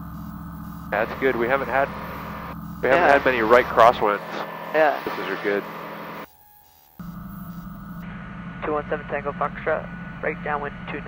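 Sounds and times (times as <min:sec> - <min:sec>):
aircraft engine and propeller drone: 0:00.0 - 0:06.3, 0:08.1 - 0:11.0.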